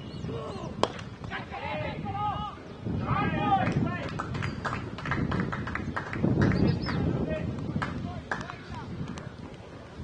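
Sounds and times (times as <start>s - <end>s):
indistinct outdoor voices: 0.0s - 10.0s.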